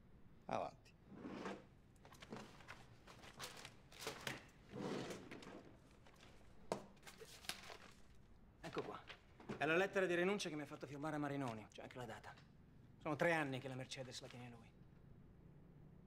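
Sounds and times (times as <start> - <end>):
paper rustling: 2.0 - 9.6.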